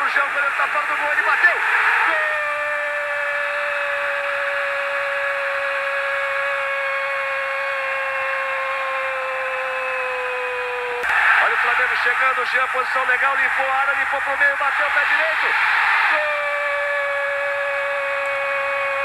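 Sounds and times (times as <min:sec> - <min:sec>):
crowd noise: 0:00.0 - 0:03.9, 0:11.0 - 0:19.0
narrator's long goal cry: 0:02.1 - 0:04.1, 0:16.1 - 0:19.0.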